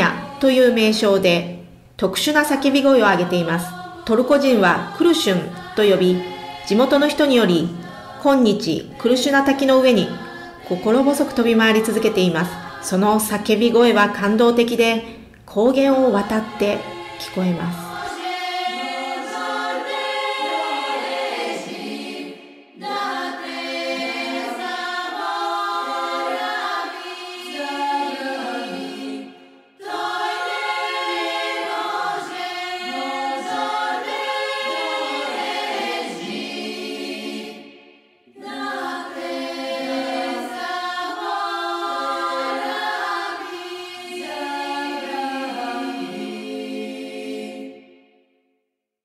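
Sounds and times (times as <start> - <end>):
choir singing: 0.0 - 48.3.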